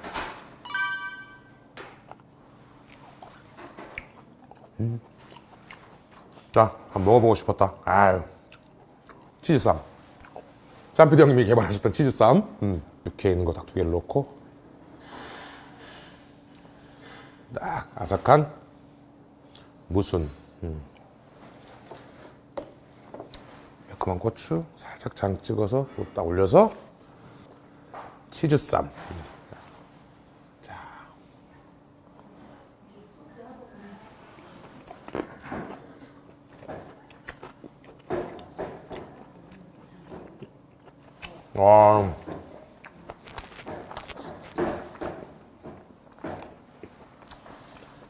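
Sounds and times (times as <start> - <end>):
high ringing clink: 0.6 - 1.6
soft chewing: 1.9 - 7.0, 8.3 - 11.0, 33.8 - 45.0, 45.8 - 48.0.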